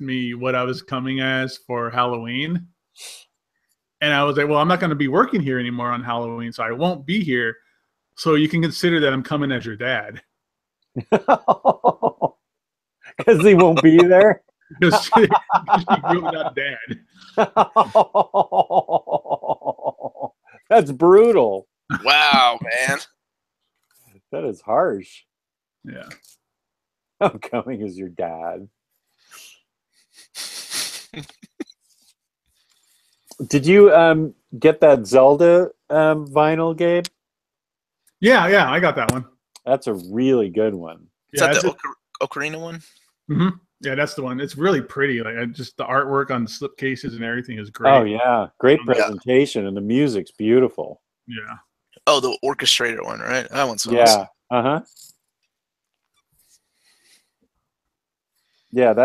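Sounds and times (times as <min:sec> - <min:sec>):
man laughing: 0:04.0 - 0:07.5, 0:08.4 - 0:10.2, 0:11.0 - 0:12.3, 0:13.1 - 0:23.0, 0:27.2 - 0:28.6, 0:33.4 - 0:36.3, 0:38.2 - 0:39.1, 0:39.7 - 0:41.8, 0:43.4 - 0:50.7, 0:53.5 - 0:54.2.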